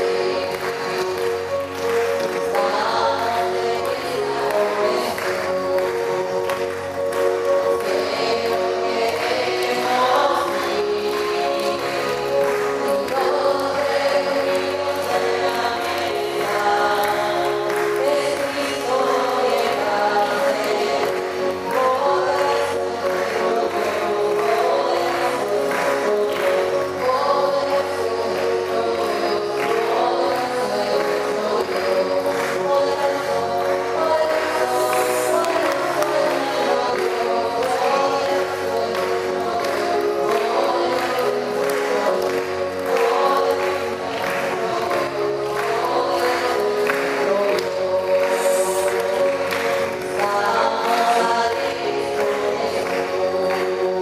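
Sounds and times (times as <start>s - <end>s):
group singing a hymn: 0.0s - 54.0s.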